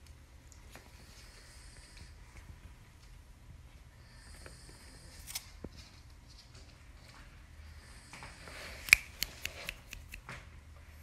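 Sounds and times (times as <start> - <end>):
finger clicks: 8.8 - 10.2.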